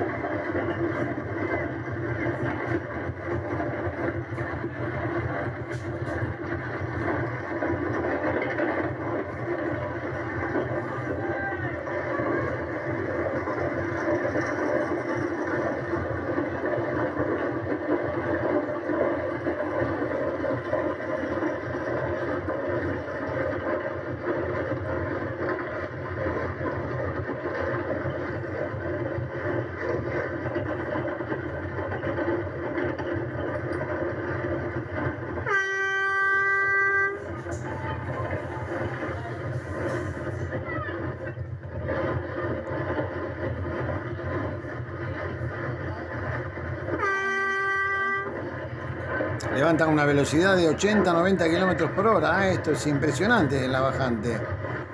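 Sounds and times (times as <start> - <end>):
cart wheels rumbling on asphalt: 0.0 - 54.9
horn: 35.4 - 37.2, 47.0 - 48.3.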